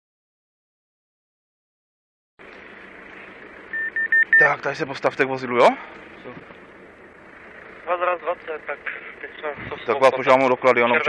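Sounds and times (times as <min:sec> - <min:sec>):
street noise hiss: 0:02.4 - 0:10.8
short high-pitched electronic beeps: 0:03.7 - 0:04.5.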